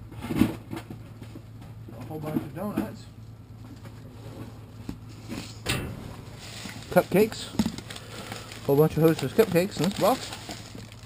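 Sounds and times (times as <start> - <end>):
cardboard and plastic rustling: 0.0 - 11.0
steady low hum: 0.0 - 11.0.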